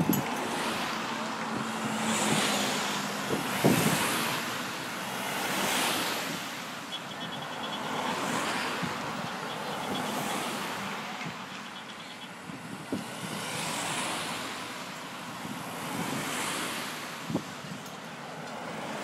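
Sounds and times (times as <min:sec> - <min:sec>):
wind on microphone: 0:00.0 - 0:06.5, 0:12.4 - 0:14.0
cars and vans driving past: 0:00.0 - 0:19.0.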